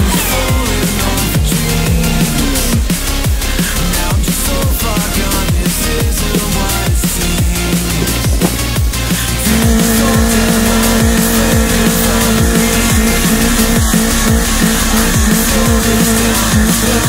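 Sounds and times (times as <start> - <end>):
car engine at high revs: 0.0 - 4.6, 7.8 - 17.0
electronic music with kick drum: 0.0 - 17.0.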